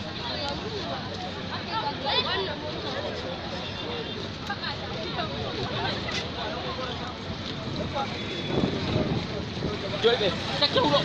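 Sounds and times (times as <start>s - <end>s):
people's voices: 0.0s - 11.0s
road traffic noise: 0.0s - 11.0s.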